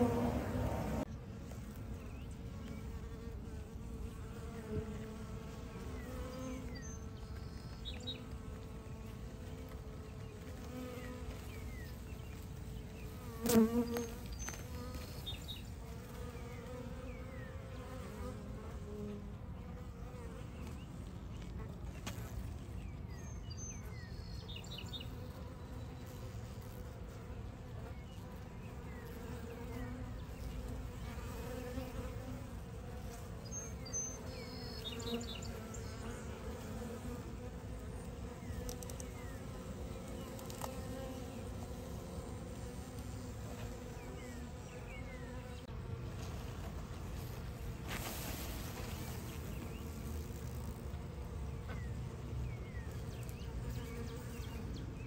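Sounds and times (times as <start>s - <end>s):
bee swarm buzzing: 0.0s - 55.0s.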